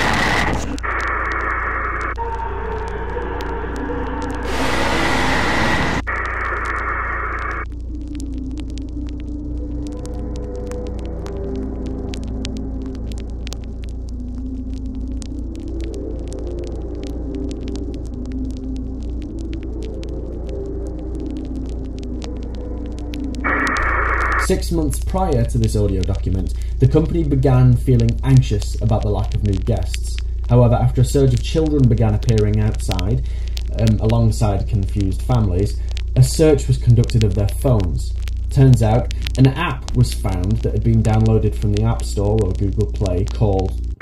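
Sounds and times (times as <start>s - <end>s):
eerie wavering drone: 0.0s - 14.4s
faint crackle: 0.0s - 44.0s
tape static bursts: 0.0s - 44.0s
low electrical hum: 2.9s - 44.0s.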